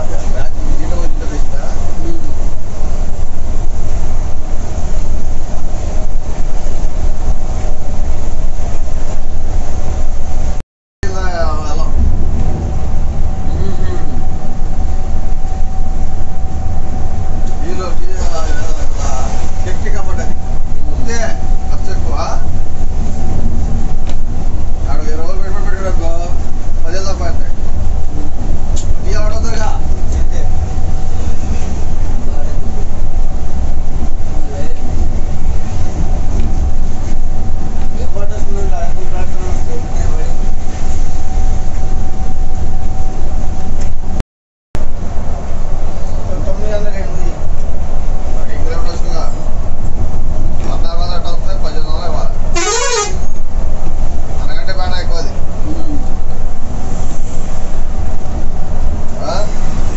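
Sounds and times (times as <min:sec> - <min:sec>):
people talking: 0:00.0 - 0:02.5, 0:11.0 - 0:12.0, 0:13.4 - 0:14.4, 0:17.5 - 0:20.4, 0:21.0 - 0:22.6, 0:24.8 - 0:27.6, 0:28.8 - 0:30.6, 0:32.2 - 0:32.8, 0:34.3 - 0:35.0, 0:37.9 - 0:40.5, 0:46.0 - 0:47.4, 0:48.3 - 0:49.5, 0:50.5 - 0:53.2, 0:54.4 - 0:56.1, 0:59.1 - 0:59.9
bus road rumble: 0:00.0 - 0:44.2, 0:44.8 - 0:59.9.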